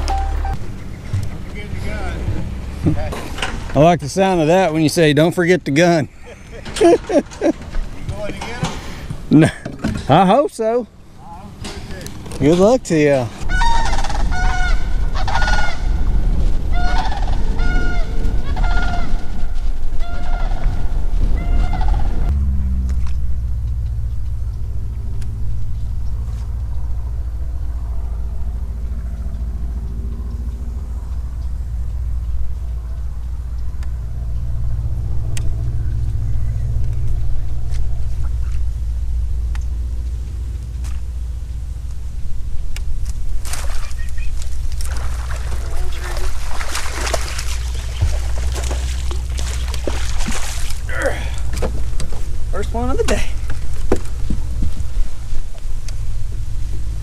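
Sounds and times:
steady low rumble: 0.0 - 10.2, 10.8 - 57.0
large birds honking: 13.4 - 22.4.

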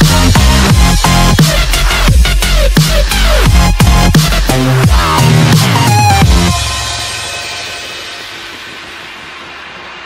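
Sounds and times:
dubstep-style electronic music: 0.0 - 10.0.

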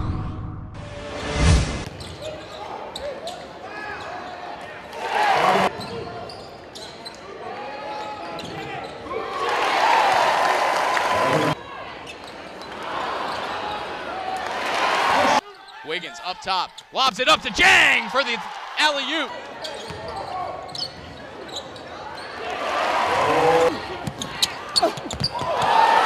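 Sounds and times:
sneakers squeaking on court: 1.9 - 4.1, 5.8 - 7.2, 19.5 - 22.4, 24.0 - 25.5
crowd cheering: 4.8 - 5.7, 9.0 - 12.0, 12.7 - 20.6, 22.3 - 26.0.

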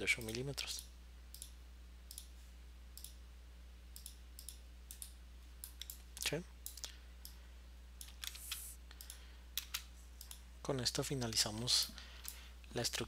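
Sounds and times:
low steady hum: 0.0 - 13.0
computer mouse clicking: 4.0 - 7.4, 8.0 - 10.4.

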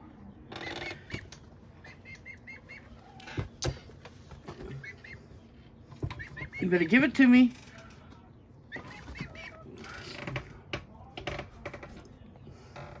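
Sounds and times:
chicks peeping: 0.0 - 10.4.

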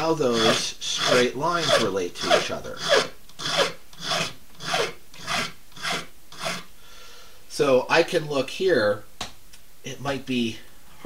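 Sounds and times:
hand file rasping on bone: 0.3 - 6.7.

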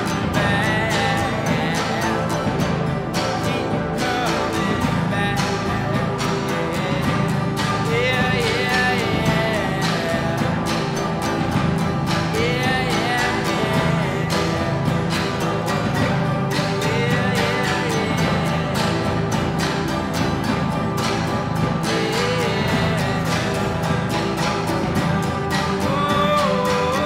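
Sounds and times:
band playing guitars: 0.0 - 27.0
sharp percussive hits: 0.0 - 27.0.

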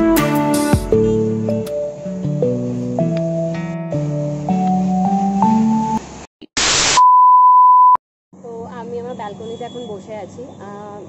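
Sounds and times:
tv static hiss: 5.5 - 7.0
test tone beep: 7.0 - 8.0.

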